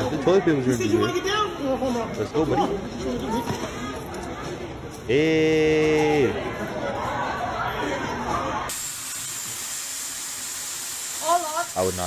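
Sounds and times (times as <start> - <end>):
voices echoing in a store: 0.0 - 12.0.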